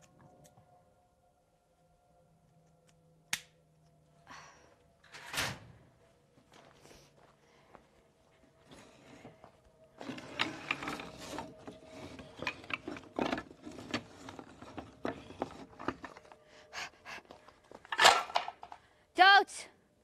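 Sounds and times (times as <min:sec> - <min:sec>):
wood scraping: 0:10.0 - 0:16.4
wooden slats clattering: 0:17.9 - 0:18.8.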